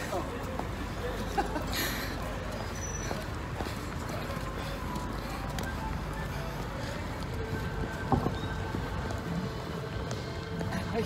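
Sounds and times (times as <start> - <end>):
footsteps on hard paving: 0.0 - 11.0.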